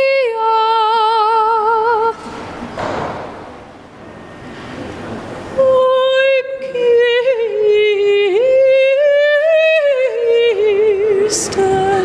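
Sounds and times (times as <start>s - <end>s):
woman singing operatic notes: 0.0s - 2.2s, 5.6s - 12.0s.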